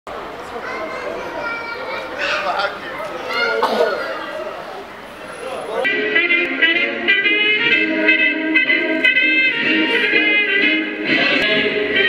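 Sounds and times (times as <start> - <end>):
children talking and calling: 0.1 - 5.9.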